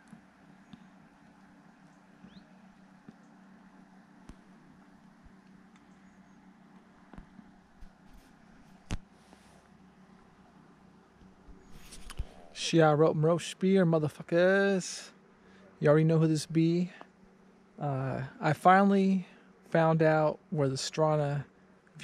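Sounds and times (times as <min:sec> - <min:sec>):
distant motorboat engine drone: 0:00.0 - 0:22.0.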